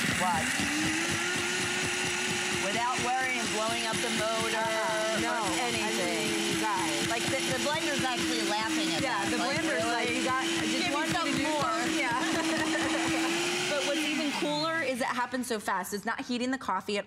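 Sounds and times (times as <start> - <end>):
blender grinding coffee beans: 0.0 - 15.0.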